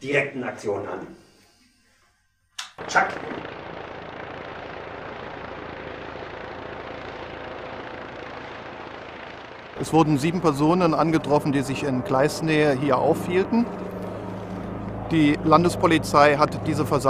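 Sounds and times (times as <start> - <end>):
helicopter flying overhead: 2.8 - 17.0.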